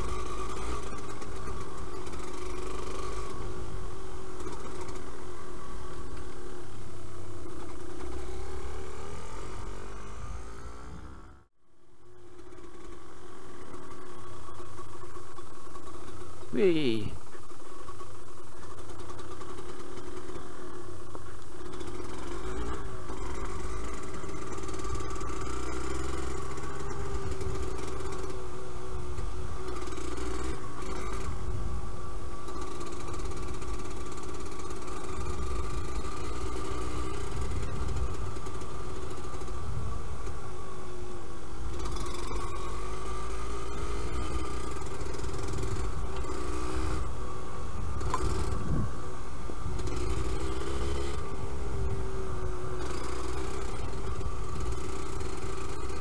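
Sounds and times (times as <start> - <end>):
two-stroke engine revving: 0.0 - 11.5, 18.6 - 56.0.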